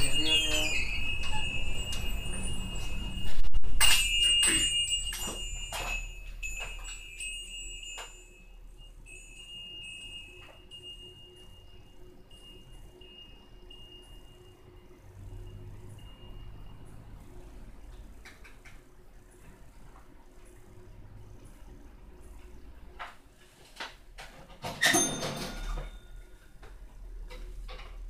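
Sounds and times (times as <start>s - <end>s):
metal door chime jangling: 0.0s - 12.7s, 24.6s - 26.3s.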